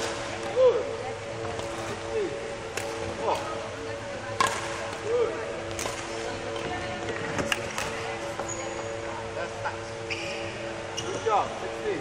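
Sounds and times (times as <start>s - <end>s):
racket striking shuttlecock: 2.7s - 3.5s, 4.4s - 4.9s, 5.7s - 6.2s
shoe squeak on court floor: 10.1s - 11.2s.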